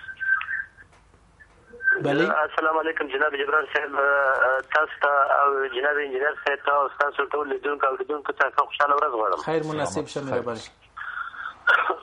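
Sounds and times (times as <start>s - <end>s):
person speaking over telephone line: 1.9s - 9.9s.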